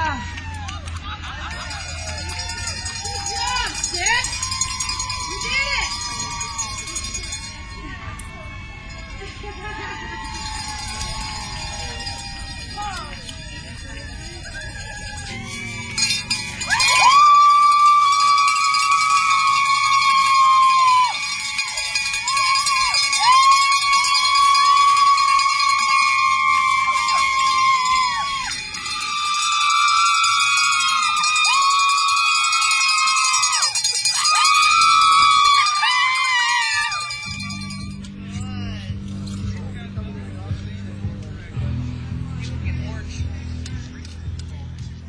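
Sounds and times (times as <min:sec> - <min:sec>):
people cheering with high whoops: 0:00.0 - 0:38.0.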